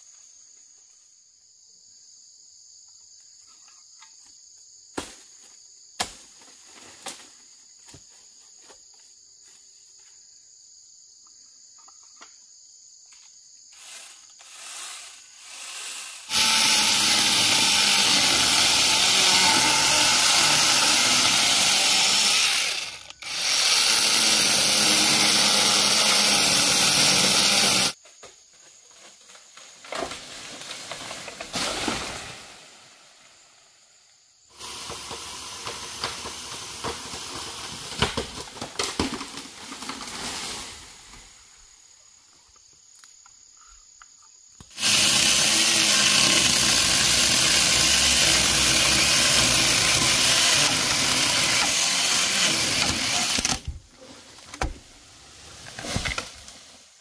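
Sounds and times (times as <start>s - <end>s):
insects chirping: 0.0s - 57.0s
chainsaw cutting bamboo: 13.8s - 28.0s, 34.5s - 40.5s, 44.6s - 53.8s
rustling and cracking bamboo: 26.5s - 32.5s, 34.7s - 41.2s, 44.6s - 57.0s.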